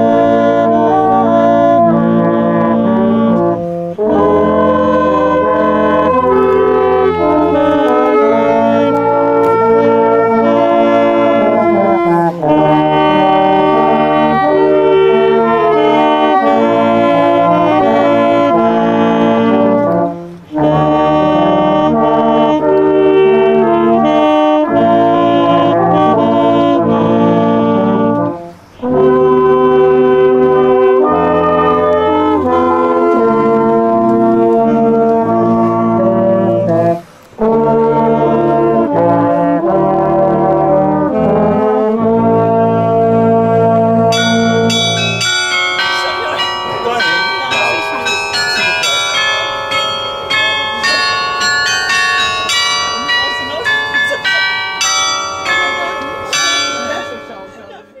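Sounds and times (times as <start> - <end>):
brass ensemble sustained chords: 0.0 - 58.0
short bright ringing notes: 44.1 - 57.7.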